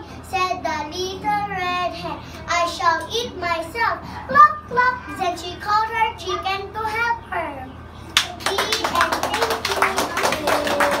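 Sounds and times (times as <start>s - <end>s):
audience clapping: 8.2s - 11.0s.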